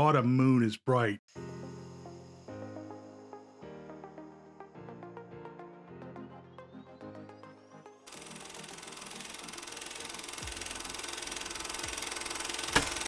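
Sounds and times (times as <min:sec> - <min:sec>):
intro music with held tones: 0:01.3 - 0:13.0
hissing rattling sound effect: 0:08.1 - 0:13.0.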